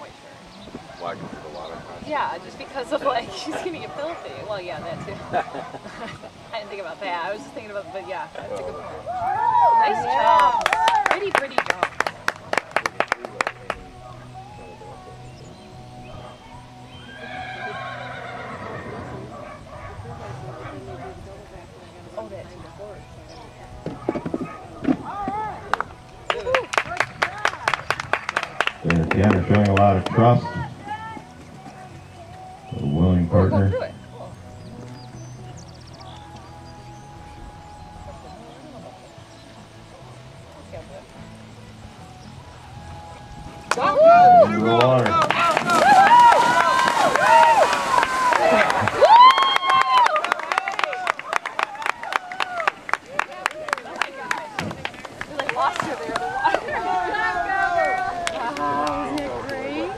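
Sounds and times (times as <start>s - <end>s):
distant people talking: 0.0s - 59.9s
music: 0.0s - 59.9s
horse neighing: 17.0s - 19.4s.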